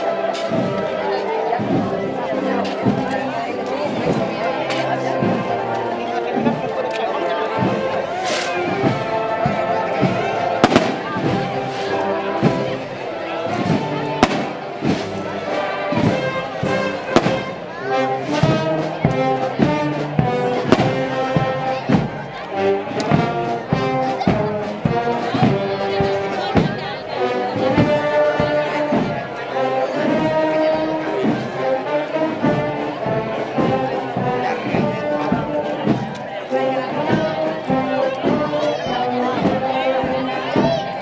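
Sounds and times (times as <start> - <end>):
brass band playing a march: 0.0 - 41.0.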